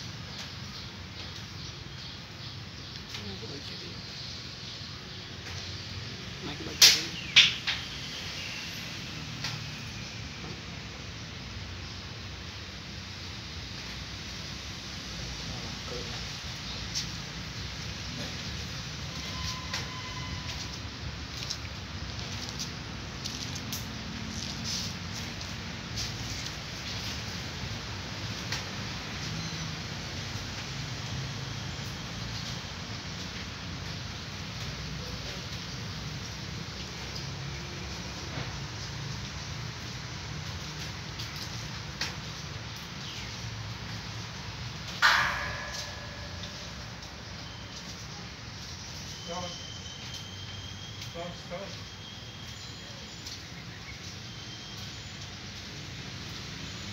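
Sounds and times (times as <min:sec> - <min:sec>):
background noise: 0:00.0 - 0:56.9.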